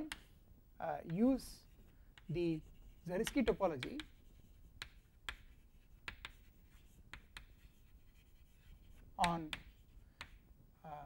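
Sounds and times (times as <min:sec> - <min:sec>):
chalk tapping on board: 0:00.0 - 0:00.3, 0:01.0 - 0:10.4
chalk scratching on chalkboard: 0:01.2 - 0:10.4.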